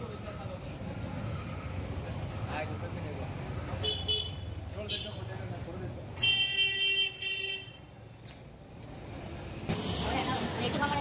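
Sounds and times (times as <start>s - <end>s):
traffic engine rumble: 0.0s - 11.0s.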